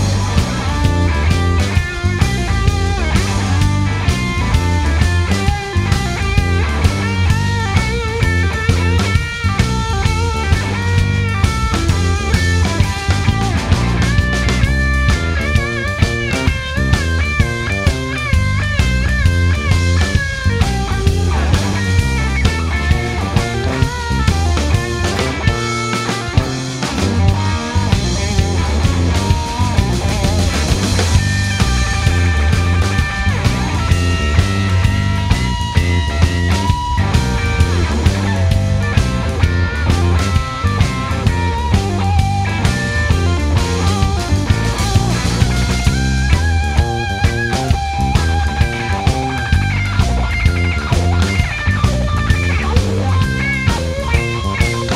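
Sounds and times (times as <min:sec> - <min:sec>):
bass line: 0:00.0 - 0:54.9
drum beat: 0:00.0 - 0:54.9
lead electric guitar bending notes: 0:00.0 - 0:54.9.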